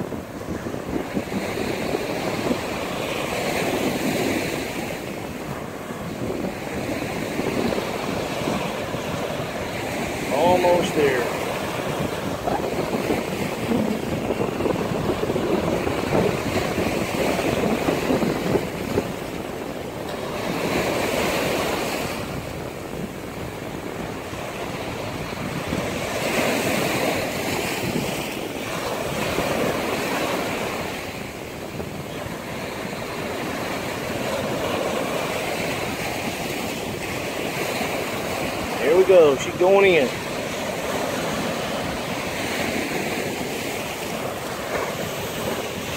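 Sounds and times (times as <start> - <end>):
small waves breaking on sand: 0.0 - 45.9
wind rumbling on microphone: 0.0 - 45.9.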